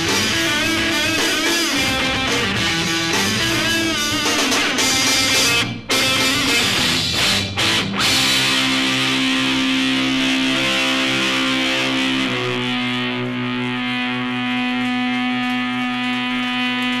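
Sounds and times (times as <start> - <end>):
electric guitar and bass chords: 0.0 - 17.0.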